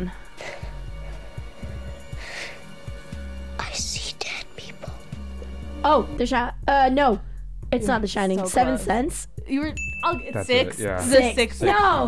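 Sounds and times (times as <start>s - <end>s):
music bed: 0.0s - 12.0s
whispered film dialogue: 0.0s - 12.0s.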